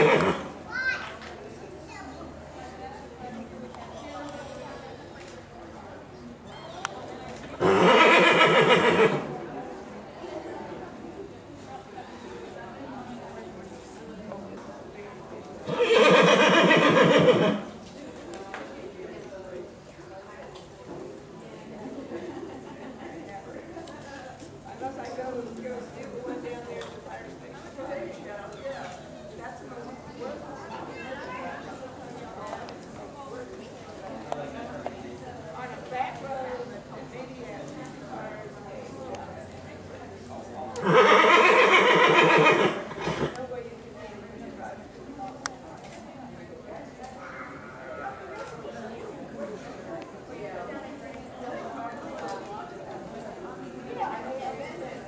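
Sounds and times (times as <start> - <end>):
horse whinnying: 0.0 - 0.5, 7.6 - 9.3, 15.7 - 17.7, 40.8 - 43.4.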